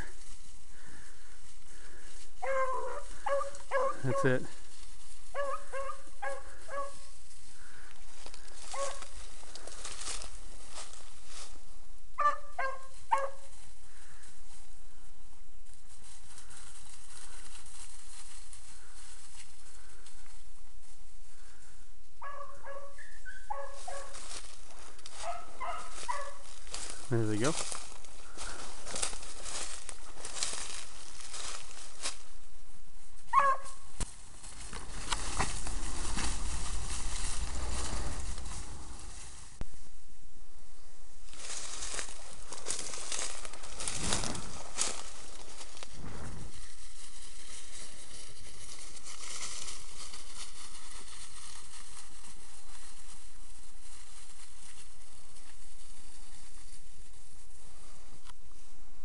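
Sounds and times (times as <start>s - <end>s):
rustling through dry leaves: 0.0s - 59.0s
low rumble: 34.8s - 41.1s.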